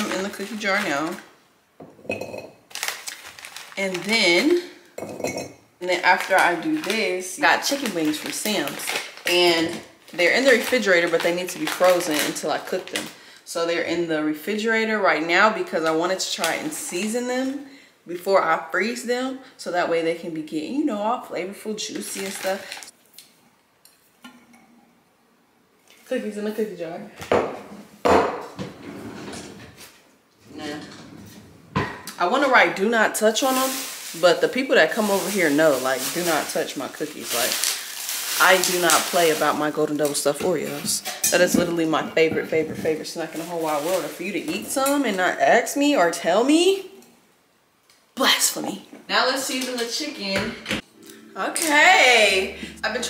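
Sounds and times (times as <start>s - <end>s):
knocks on kitchen counter: 27.2s - 28.7s.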